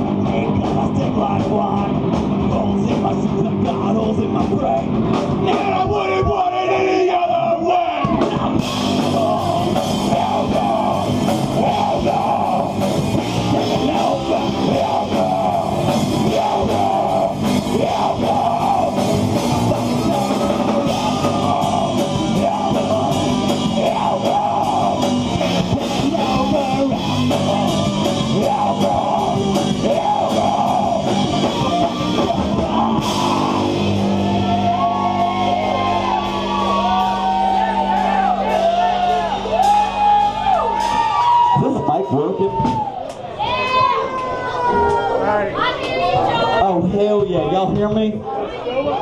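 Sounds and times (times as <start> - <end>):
distorted electric guitar: 0.0 - 6.4, 7.9 - 43.0
drum kit: 0.0 - 43.9
live rock band: 0.0 - 45.2.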